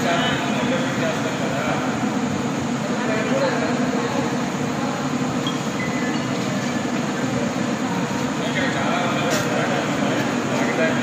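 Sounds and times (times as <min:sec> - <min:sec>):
factory machinery din: 0:00.0 - 0:11.0.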